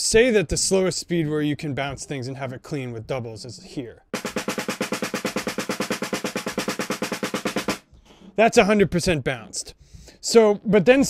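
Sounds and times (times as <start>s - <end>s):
snare drum double strokes: 4.2s - 7.9s.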